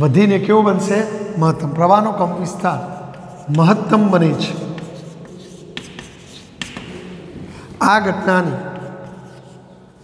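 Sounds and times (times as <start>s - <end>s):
man's voice: 0.0s - 2.9s, 3.5s - 4.8s, 7.8s - 8.9s
chalk tapping and scratching: 2.3s - 7.2s, 8.1s - 10.0s.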